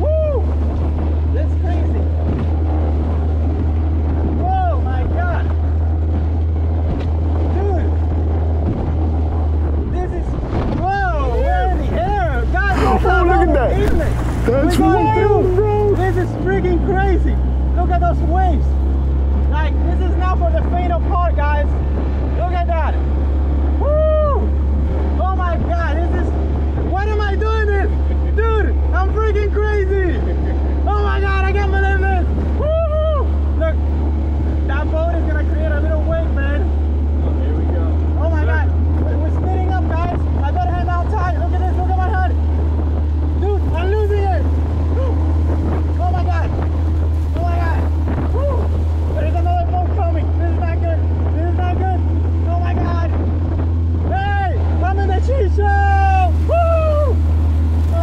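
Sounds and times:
boat through choppy water: 0.0s - 58.0s
outboard motor droning: 0.0s - 58.0s.

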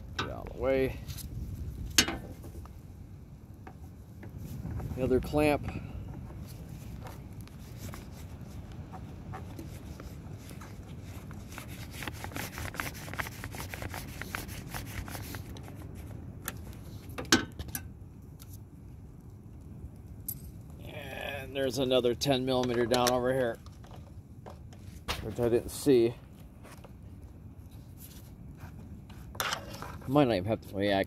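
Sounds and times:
wind rumble on microphone: 0.0s - 31.0s.

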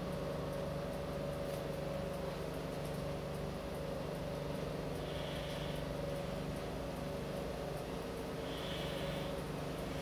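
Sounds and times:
steady mechanical hum with hiss: 0.0s - 10.0s.

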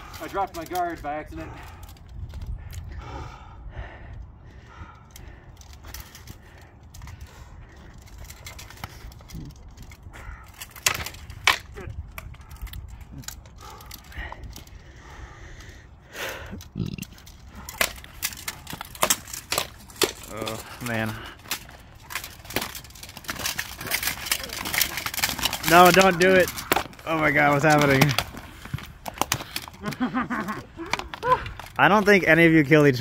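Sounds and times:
practice swords clacking: 10.0s - 14.7s, 17.1s - 32.2s.

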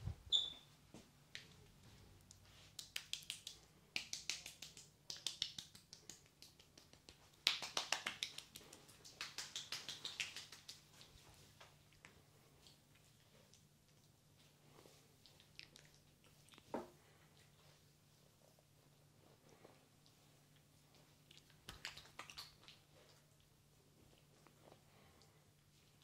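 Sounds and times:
wet clicking of hands on face: 2.2s - 12.8s, 21.3s - 22.8s.

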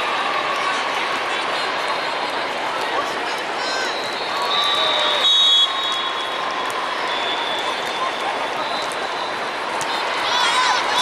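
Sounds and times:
din of crowded sports hall: 0.0s - 11.0s
referee's whistle blast: 3.9s - 6.4s.

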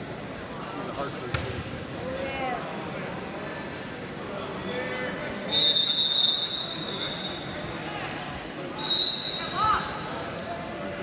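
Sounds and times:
crowd chatter: 0.0s - 11.0s
referee's whistle blasts: 5.5s - 7.6s, 8.8s - 9.8s.

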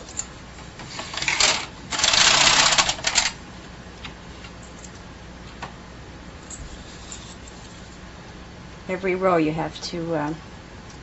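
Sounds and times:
knitting machine carriage rattle: 1.2s - 3.3s
knitting machine clicks: 1.2s - 3.4s.

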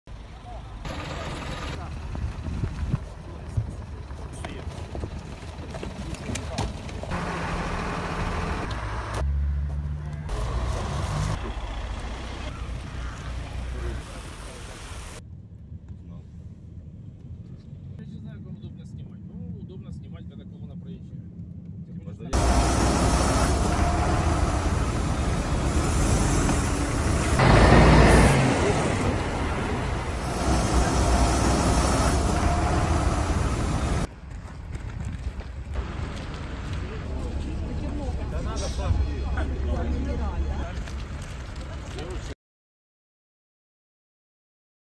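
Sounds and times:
vehicle engines: 0.1s - 42.4s
people's voices: 26.5s - 34.1s, 36.0s - 42.4s.

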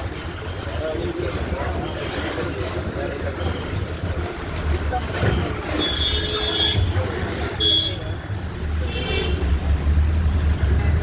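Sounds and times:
people chattering: 0.0s - 11.0s
traffic engine rumble: 0.0s - 11.0s.

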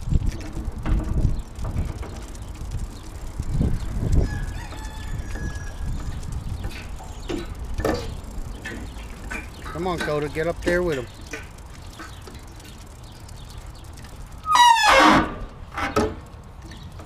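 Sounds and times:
steady low rumble: 0.0s - 14.5s
distant rooster crowing: 4.2s - 6.0s.

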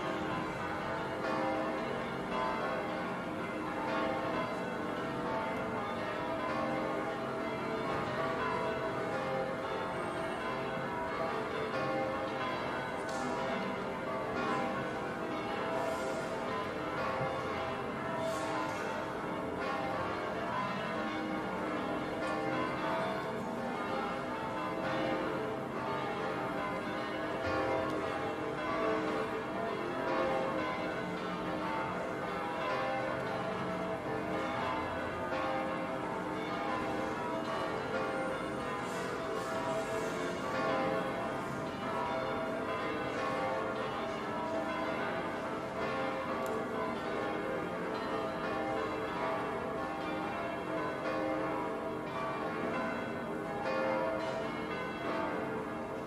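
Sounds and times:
church bells pealing: 0.0s - 56.0s.

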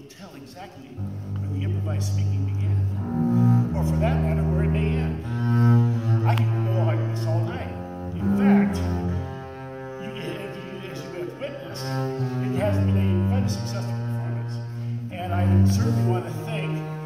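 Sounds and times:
bowed double bass notes: 0.8s - 17.0s.

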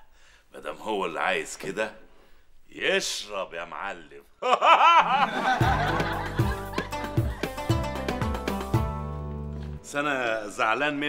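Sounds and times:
man laughing heartily: 4.4s - 7.8s
sitcom theme music with beat: 5.0s - 10.2s.

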